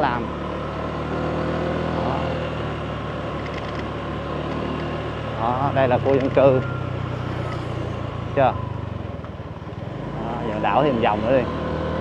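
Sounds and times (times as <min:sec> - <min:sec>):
motorbike engine running: 0:00.0 - 0:12.0.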